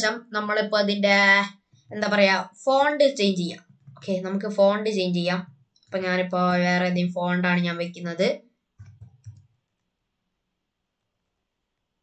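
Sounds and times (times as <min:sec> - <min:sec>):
mouse clicks: 0:08.8 - 0:09.6.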